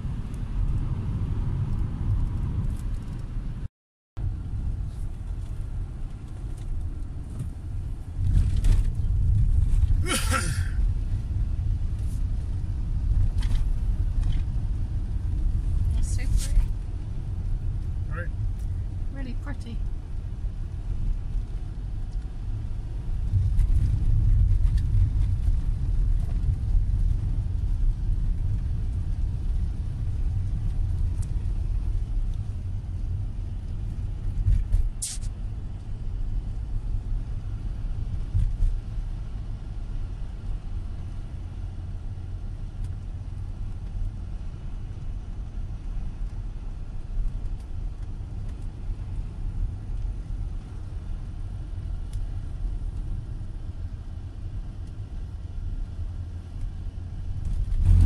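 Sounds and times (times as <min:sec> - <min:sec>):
engine and tyre rumble: 0:00.0 - 0:58.0.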